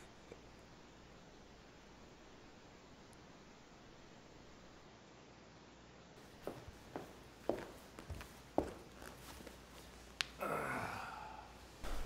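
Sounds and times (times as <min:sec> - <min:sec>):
person sighing: 0:10.4 - 0:11.8.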